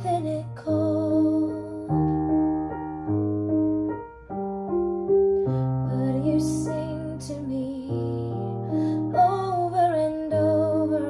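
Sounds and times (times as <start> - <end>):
digital piano slow chords: 0.0 - 11.0.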